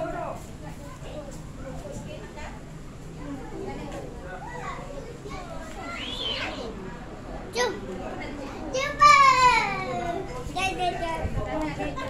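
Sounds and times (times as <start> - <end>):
children chattering: 0.0 - 12.0
child shouting: 8.8 - 10.2.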